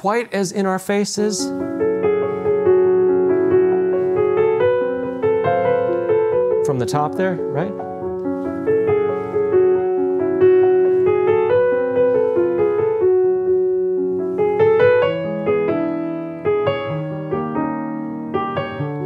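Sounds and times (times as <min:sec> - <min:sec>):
slow lyrical grand piano: 0:01.4 - 0:19.0.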